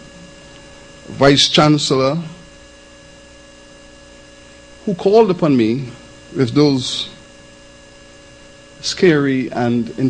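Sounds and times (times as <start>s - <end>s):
electrical mains hum: 0.0s - 10.0s
man speaking: 1.1s - 2.4s, 4.8s - 7.2s, 8.8s - 10.0s.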